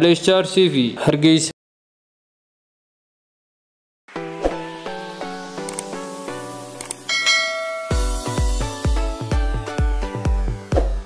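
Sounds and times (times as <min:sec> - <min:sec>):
electronic notes: 0:07.0 - 0:09.2
bell-like chime: 0:07.1 - 0:08.6
bass-heavy electronic beat: 0:07.3 - 0:11.0.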